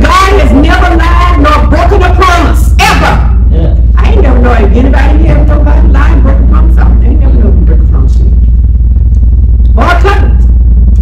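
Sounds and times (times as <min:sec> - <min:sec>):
woman speaking: 0:00.0 - 0:08.7, 0:09.7 - 0:10.4
deep rumble: 0:00.0 - 0:11.0.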